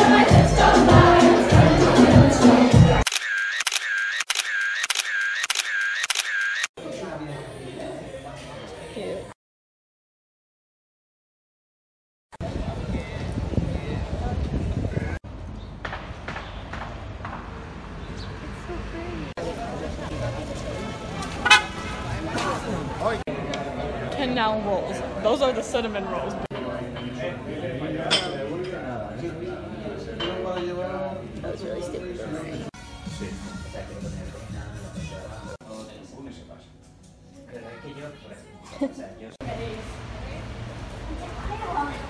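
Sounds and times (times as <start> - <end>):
crowd voices: 0.0 - 3.1, 18.3 - 35.6
camera shutter click and whir: 3.0 - 6.7
passing traffic: 15.3 - 24.0
vehicle horn toot: 21.4 - 22.1.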